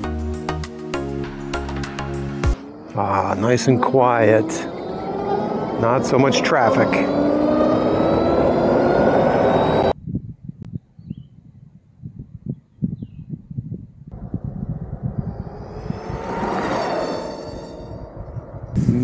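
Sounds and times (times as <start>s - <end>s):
vehicle passing with a whine: 2.5s - 10.0s, 14.1s - 18.8s
electric motor whine: 2.6s - 10.0s, 14.5s - 18.4s
wind rush: 2.6s - 19.0s
wind buffeting microphone: 7.2s - 19.0s.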